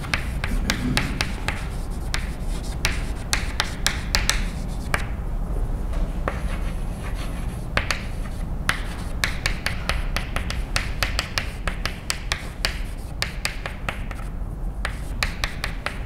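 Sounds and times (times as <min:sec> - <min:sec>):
chalk tapping and scraping on blackboard: 0:00.0 - 0:05.2, 0:06.2 - 0:16.0
low room hum: 0:00.0 - 0:16.0.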